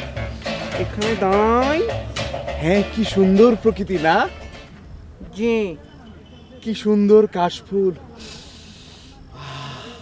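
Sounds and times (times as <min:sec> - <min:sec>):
man breathing and sighing: 0:08.2 - 0:10.0.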